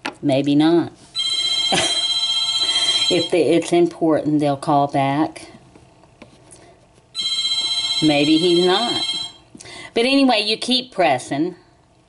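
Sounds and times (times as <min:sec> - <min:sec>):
telephone ringing: 0:01.2 - 0:03.5, 0:07.2 - 0:09.5.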